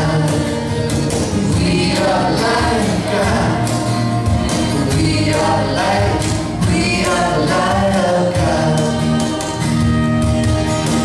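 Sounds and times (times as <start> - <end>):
man and woman singing together: 0.0 - 9.8
acoustic guitars strumming: 0.0 - 11.0.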